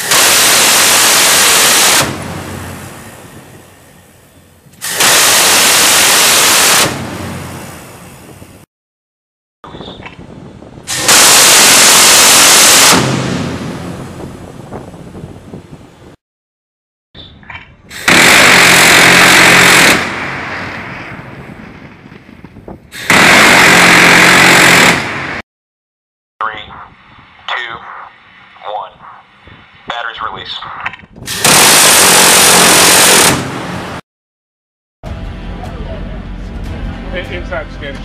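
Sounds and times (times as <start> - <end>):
rotary cannon firing: 0.0 - 3.5, 4.8 - 7.6, 10.9 - 13.8, 17.9 - 22.1, 23.0 - 25.4, 31.3 - 34.0.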